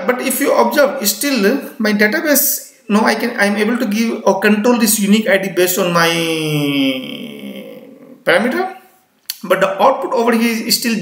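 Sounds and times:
man drawing out hesitation vowel: 6.1s - 8.4s.

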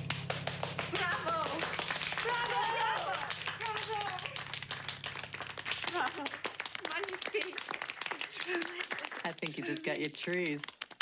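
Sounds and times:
low held music chord: 0.0s - 8.5s
people clapping: 0.0s - 11.0s.

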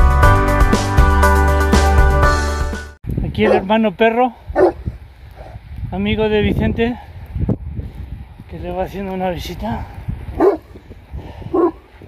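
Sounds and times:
dog barking: 3.4s - 3.7s, 4.6s - 4.8s, 10.4s - 10.7s, 11.5s - 11.8s.

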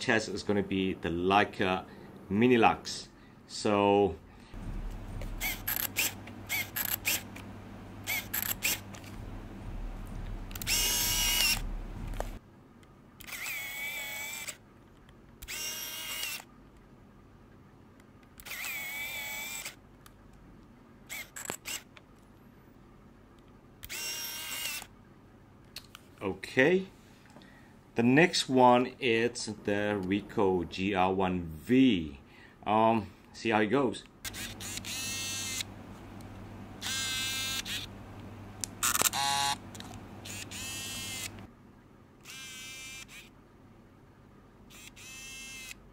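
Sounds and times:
camera motor whirring: 4.9s - 9.2s, 10.1s - 12.4s, 13.2s - 14.6s, 15.4s - 16.5s, 18.4s - 19.8s, 21.1s - 21.9s, 23.8s - 24.9s, 34.2s - 35.7s, 36.8s - 37.9s, 38.6s - 41.5s, 42.2s - 43.3s, 44.7s - 45.8s
camera mechanical clicks: 5.4s - 7.5s, 8.1s - 9.2s, 10.5s - 12.4s, 13.2s - 14.6s, 15.4s - 16.5s, 18.4s - 19.8s, 21.1s - 22.0s, 23.8s - 24.9s, 34.2s - 35.7s, 36.8s - 37.9s, 38.7s - 41.4s, 42.2s - 43.3s, 44.7s - 45.8s.

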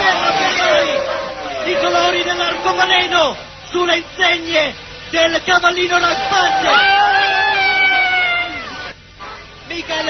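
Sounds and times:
man shouting excitedly: 0.0s - 4.6s, 5.2s - 8.7s.

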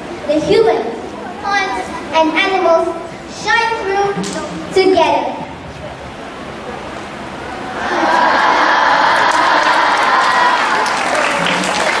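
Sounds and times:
children clapping and cheering: 7.8s - 12.0s.

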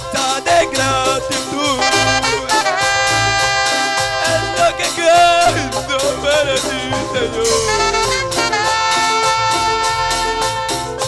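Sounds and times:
latin band music: 0.0s - 11.0s.

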